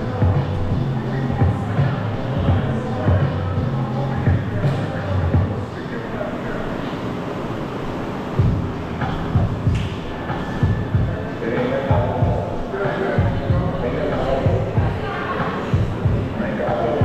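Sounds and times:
hip-hop music with heavy bass: 0.0s - 5.6s, 8.4s - 17.0s.

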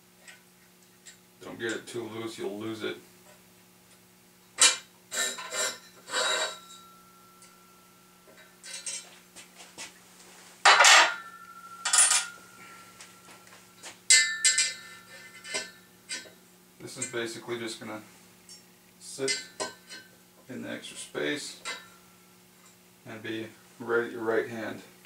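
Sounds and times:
metallic clanks with ringing: 4.6s - 9.2s, 10.6s - 16.4s, 18.5s - 20.1s, 21.6s - 22.8s.

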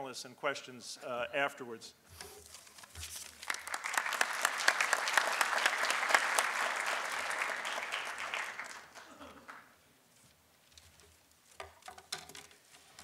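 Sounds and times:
audience applauding: 3.4s - 9.7s.

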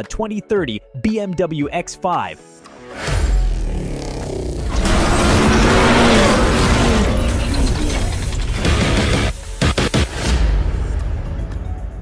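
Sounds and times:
car engine sound effect: 4.0s - 9.3s.

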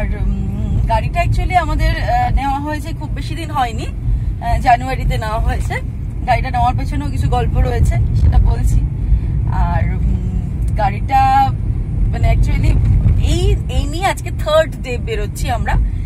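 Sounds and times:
road and engine rumble in car: 0.0s - 16.0s.

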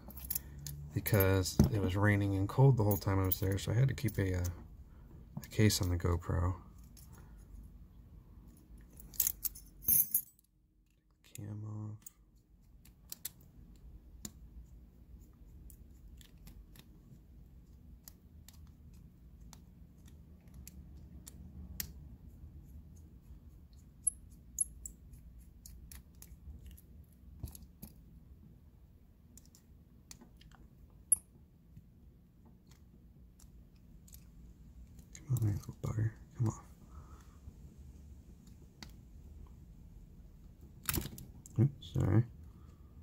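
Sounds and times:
low steady rumble: 13.4s - 43.0s.

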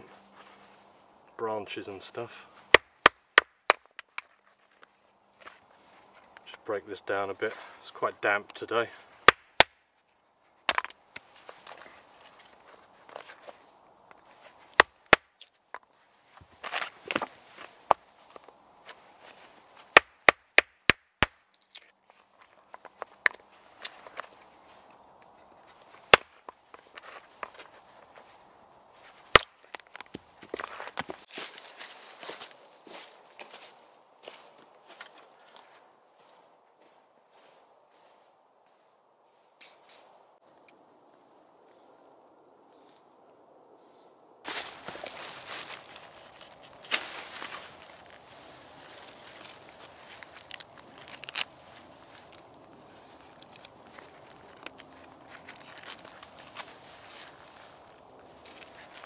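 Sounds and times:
wood rustling: 9.0s - 36.3s, 44.5s - 59.0s.

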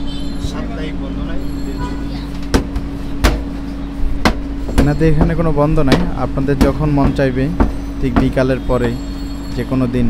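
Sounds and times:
low rumble of street traffic: 0.0s - 10.0s
steady hum: 0.0s - 10.0s
sharp knocks: 2.4s - 8.6s.

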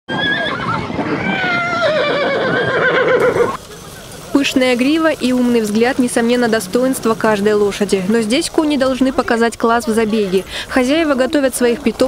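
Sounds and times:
horse whinnying: 0.1s - 3.6s.

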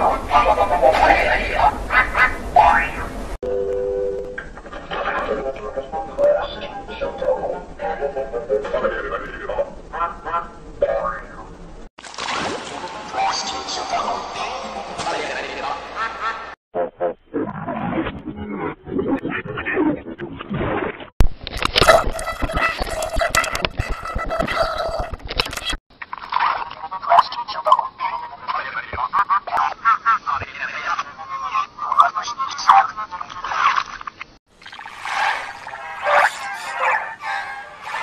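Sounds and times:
distorted voice-like growls: 0.0s - 3.2s, 4.8s - 11.6s, 16.8s - 20.8s
warbling cartoon voice sounds: 0.0s - 3.2s, 15.8s - 21.0s, 21.8s - 25.8s, 35.2s - 37.3s
two-note tone: 3.4s - 4.5s.

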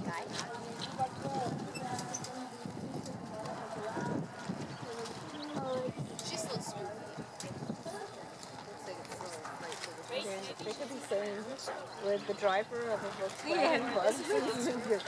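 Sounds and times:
people talking: 0.0s - 15.0s.

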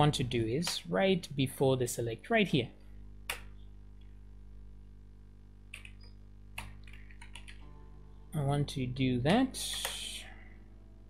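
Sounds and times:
steady low hum: 0.0s - 11.0s
computer keyboard keystrokes: 5.7s - 7.6s.

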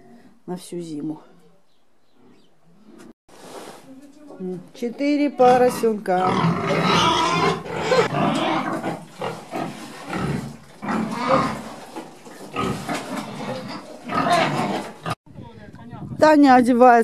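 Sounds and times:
pigs grunting and feeding: 5.4s - 15.2s.

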